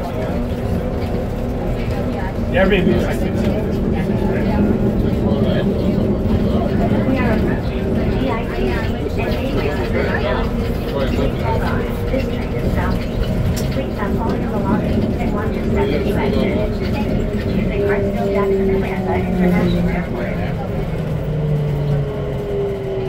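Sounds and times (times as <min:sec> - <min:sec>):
people chatting quietly: 0:00.0 - 0:23.0
train car rumbling: 0:00.0 - 0:23.0.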